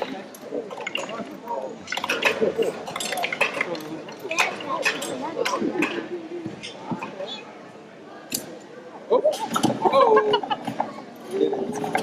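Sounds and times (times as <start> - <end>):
clicks and clinks of wooden parts: 0.0 - 7.2
murmur of voices: 0.0 - 12.0.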